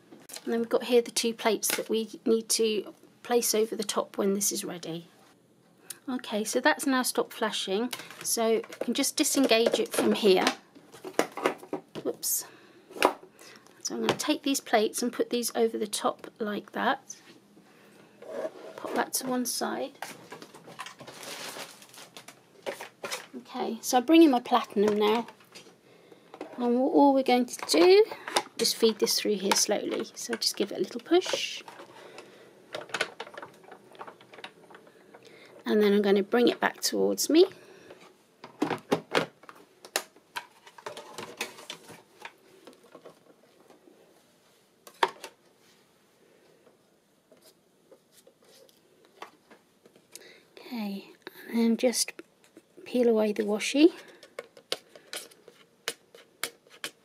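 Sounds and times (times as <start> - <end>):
rustling slide of equipment: 18.2 - 19.1.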